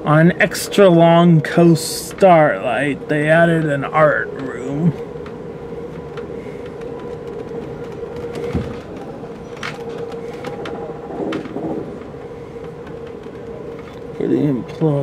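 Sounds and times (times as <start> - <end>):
train running at speed: 0.0 - 15.0
sharp clicks and knocks: 4.9 - 14.0.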